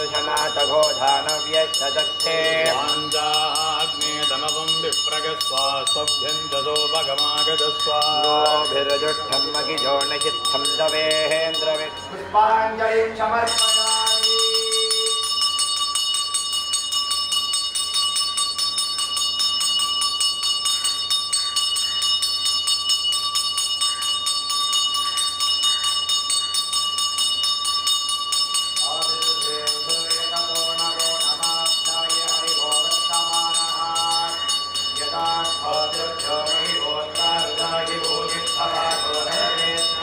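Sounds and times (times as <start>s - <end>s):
hand bell ringing: 0.0s - 12.4s, 13.4s - 40.0s
men chanting: 0.0s - 15.4s, 28.8s - 40.0s.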